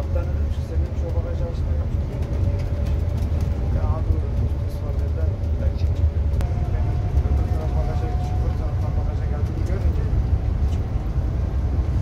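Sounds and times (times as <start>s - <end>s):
engine and tyre rumble: 0.0s - 12.0s
faint whine: 6.4s - 12.0s.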